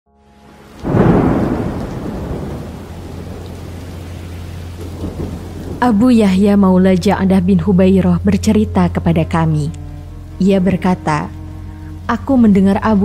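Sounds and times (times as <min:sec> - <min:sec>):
steady rain: 0:00.3 - 0:13.0
thunderclap rumbling: 0:00.8 - 0:07.7.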